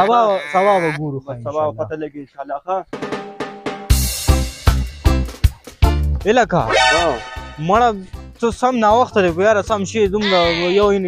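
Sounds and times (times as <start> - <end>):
man crying out: 0.0 - 1.0, 10.2 - 10.9
man speaking: 0.0 - 2.7, 10.2 - 11.0.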